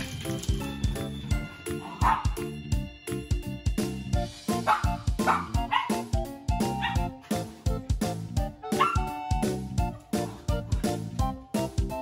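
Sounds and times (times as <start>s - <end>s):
music with steady beat: 0.0s - 12.0s
dog barking: 1.8s - 2.4s, 4.6s - 6.0s, 6.7s - 7.1s, 8.7s - 9.2s.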